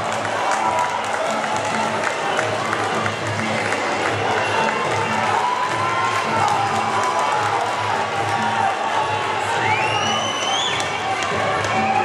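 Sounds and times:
crowd cheering: 0.0 - 12.0
loud music with low beat: 0.0 - 12.0.

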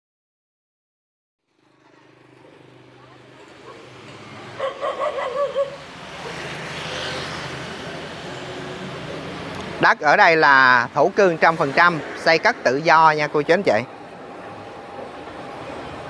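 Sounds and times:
motorbike engine passing: 1.4 - 16.0
street traffic: 1.4 - 16.0
dog barking: 3.6 - 4.0, 4.6 - 6.6.

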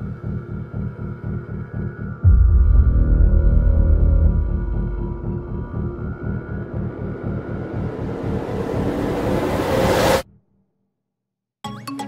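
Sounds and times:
pulsing low drone: 0.0 - 10.2
dark cinematic music: 0.0 - 10.4
rising noise swell: 2.2 - 10.2.

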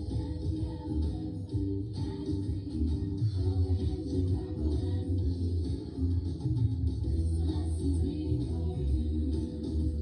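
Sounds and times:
stage show music from television: 0.0 - 10.0.

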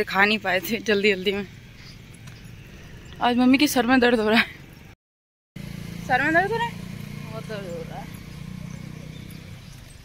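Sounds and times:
bicycle riding rumble: 0.0 - 4.9, 5.6 - 10.0.

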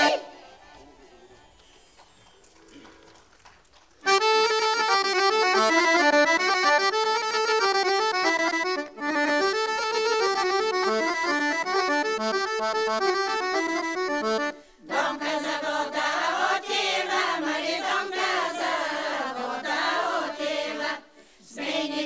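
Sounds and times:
accordion playing folk tune: 0.0 - 1.0, 4.0 - 22.0.

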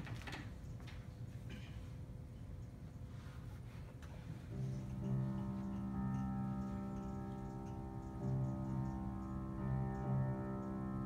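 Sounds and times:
grand piano chords: 4.4 - 11.0.

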